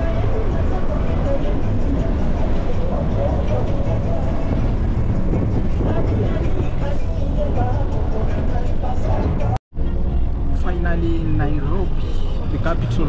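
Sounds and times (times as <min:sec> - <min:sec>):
bus engine and tyres rumbling: 0:00.0 - 0:13.0.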